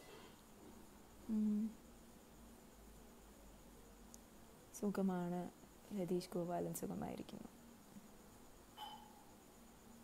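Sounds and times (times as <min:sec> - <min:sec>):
woman humming: 0:01.2 - 0:01.8.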